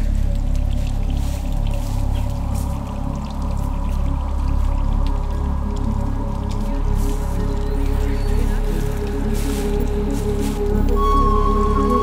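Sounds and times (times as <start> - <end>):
deep bass drone: 0.0 - 12.0
held synth tones: 11.0 - 12.0.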